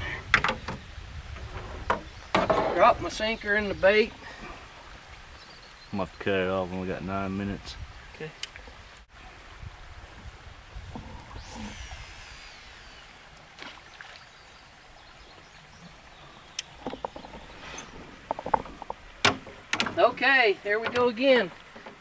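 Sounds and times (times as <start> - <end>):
fishing line sweeping hiss: 8.6 - 21.8.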